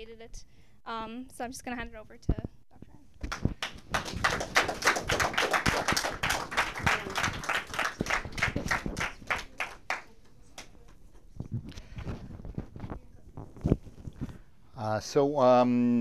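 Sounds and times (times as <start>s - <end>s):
small audience clapping: 3.2s - 11.0s.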